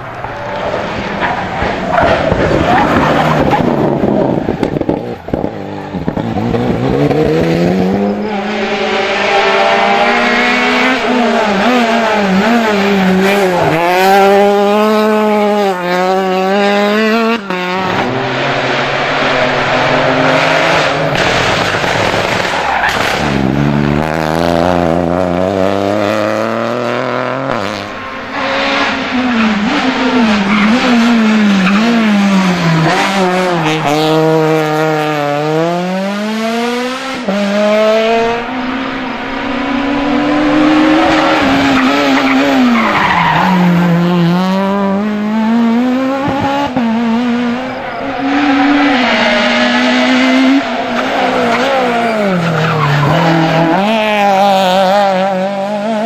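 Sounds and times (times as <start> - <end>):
rally car engines accelerating: 0.0 - 56.0.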